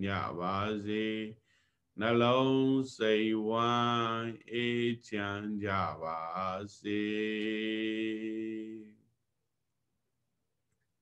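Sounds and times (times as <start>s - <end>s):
man chanting in monotone: 0.0s - 1.4s, 2.0s - 9.0s.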